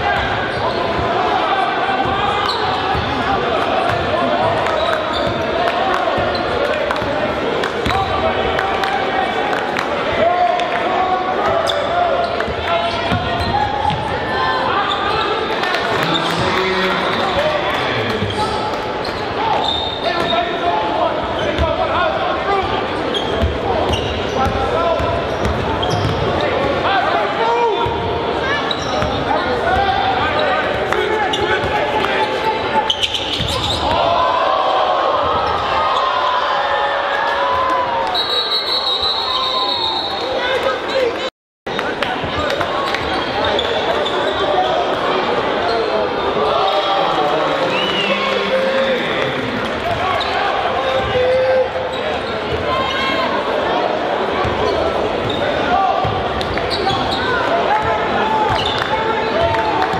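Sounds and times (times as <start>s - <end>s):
crowd voices echoing: 0.0s - 59.9s.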